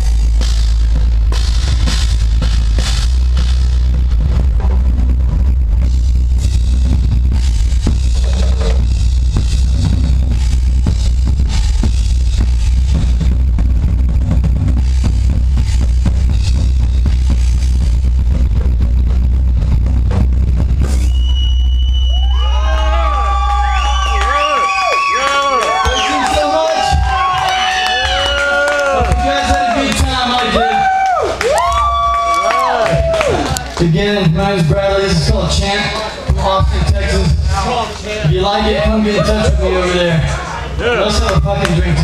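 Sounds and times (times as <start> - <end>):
drum kit played hard: 0.0 - 24.8, 25.7 - 30.9
heavy deep bass: 0.0 - 42.0
wavering whistle-like tones: 20.9 - 26.5.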